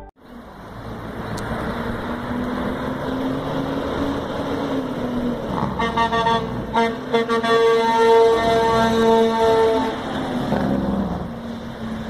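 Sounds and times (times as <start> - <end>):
truck air horn: 5.6 - 10.2.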